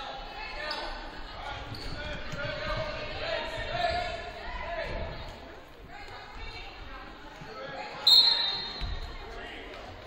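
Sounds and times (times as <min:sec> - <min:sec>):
referee whistle blast: 0:08.0 - 0:08.8.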